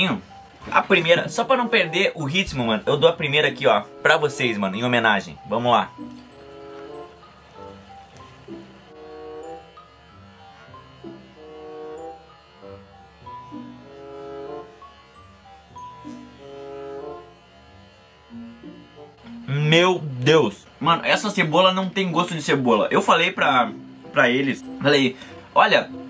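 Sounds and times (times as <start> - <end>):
soft slow background music: 0.0 - 26.0.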